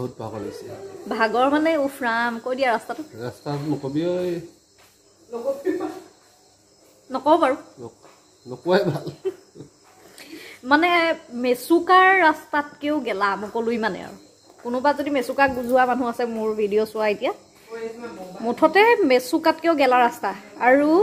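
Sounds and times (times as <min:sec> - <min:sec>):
crickets trilling: 0:00.0 - 0:21.0.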